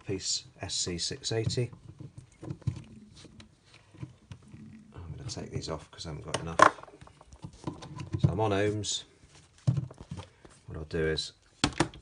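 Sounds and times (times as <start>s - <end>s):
man speaking: 0.0s - 1.8s, 4.9s - 6.8s, 8.2s - 9.1s, 10.7s - 11.4s.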